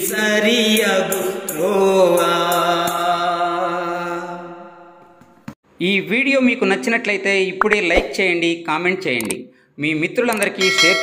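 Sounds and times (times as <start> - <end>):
man singing devotional song: 0.0 - 5.0.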